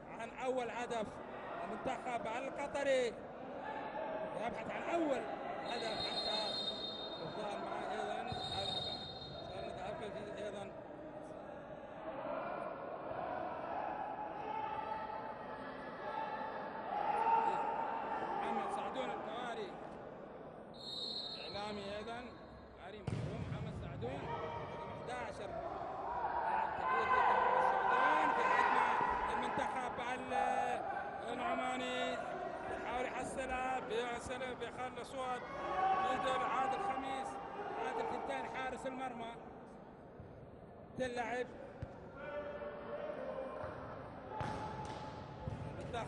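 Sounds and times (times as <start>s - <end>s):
people calling out in a hall: 0.0s - 23.0s, 23.6s - 46.0s.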